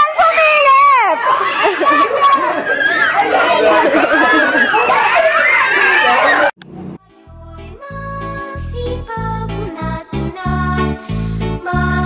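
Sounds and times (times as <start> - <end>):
young children chattering: 0.0 - 6.5.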